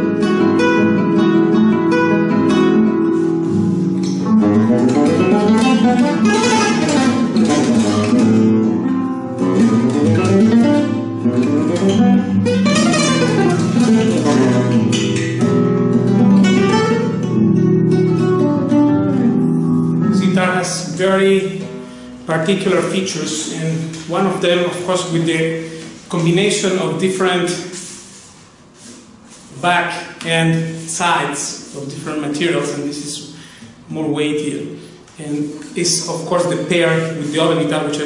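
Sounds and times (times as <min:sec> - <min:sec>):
flamenco guitar playing: 0:00.0 - 0:24.9, 0:27.8 - 0:29.5.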